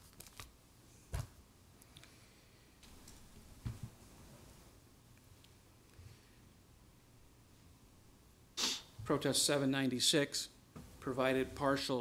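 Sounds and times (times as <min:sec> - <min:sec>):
sharp intake of breath: 0:08.6 - 0:09.0.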